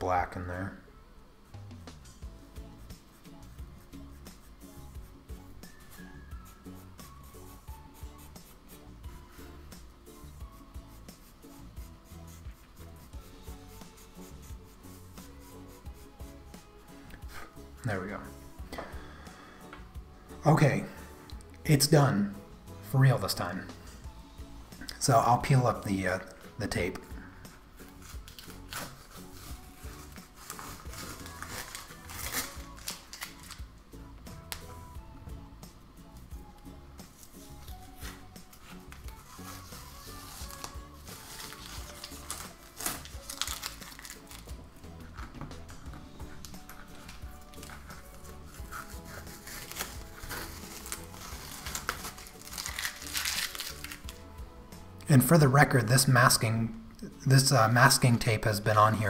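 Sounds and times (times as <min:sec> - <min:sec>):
faint background music: 0:00.0 - 0:59.0
crumpling tape: 0:27.9 - 0:33.7, 0:37.2 - 0:54.2
tape peeling off paper: 0:27.9 - 0:33.7, 0:37.1 - 0:54.2.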